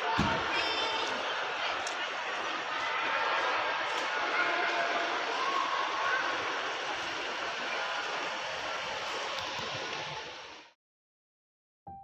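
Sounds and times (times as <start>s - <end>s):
traffic rush: 0.0s - 10.6s.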